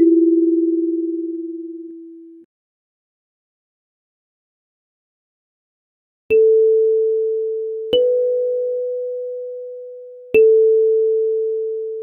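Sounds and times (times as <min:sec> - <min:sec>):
kalimba notes: 0:00.0 - 0:02.0, 0:07.9 - 0:11.2.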